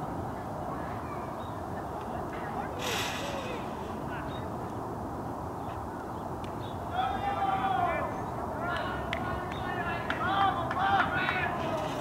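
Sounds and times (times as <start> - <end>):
faint distant shouts: 0.3 - 4.6, 6.6 - 12.0.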